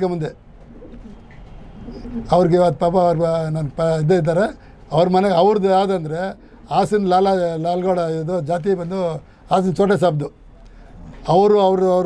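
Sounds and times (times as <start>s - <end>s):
man speaking: 0.0s - 0.4s, 2.3s - 10.4s, 11.1s - 12.0s
pigeons cooing: 0.5s - 2.5s.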